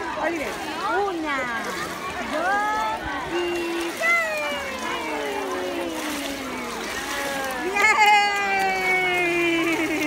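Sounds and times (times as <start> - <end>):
pool water splashing: 0.0 - 10.0.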